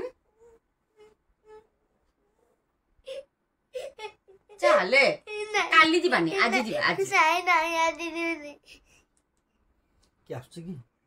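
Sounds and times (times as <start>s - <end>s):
boy sobbing: 3.0s - 5.7s.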